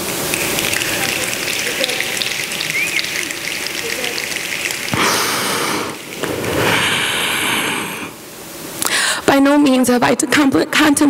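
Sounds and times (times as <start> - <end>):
audience applauding: 0.2 - 7.2.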